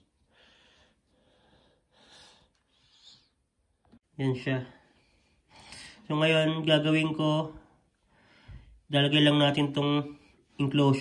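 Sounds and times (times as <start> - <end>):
faint soft breaths: 0.0 - 6.1, 7.5 - 8.9.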